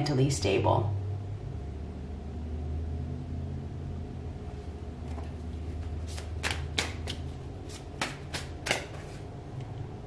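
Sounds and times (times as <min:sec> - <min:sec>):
low hum: 0:00.0 - 0:06.0
cards being shuffled: 0:05.1 - 0:09.3.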